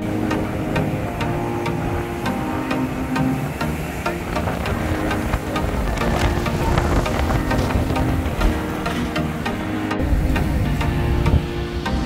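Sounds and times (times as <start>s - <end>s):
music with steady beat: 0.0s - 12.0s
sustained melodic tones: 0.0s - 12.0s.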